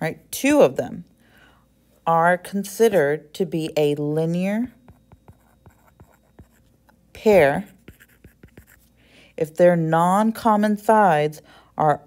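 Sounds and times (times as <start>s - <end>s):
stylus tapping on screen: 4.7s - 6.7s.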